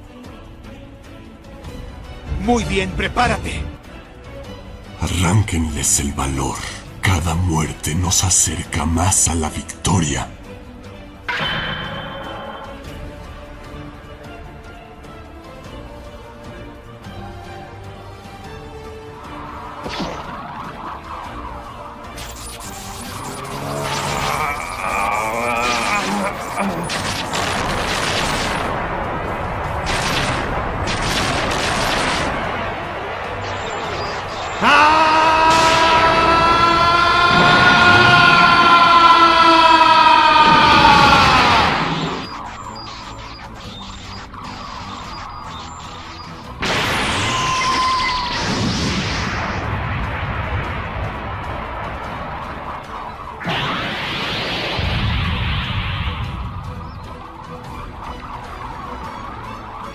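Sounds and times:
dramatic background music: 0.0 - 59.9
booms and crackling blasts: 25.6 - 34.7, 35.3 - 38.6, 40.4 - 59.9.

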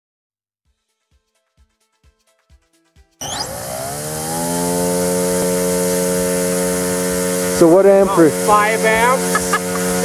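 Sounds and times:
electric motor and propeller whine: 3.2 - 10.0.

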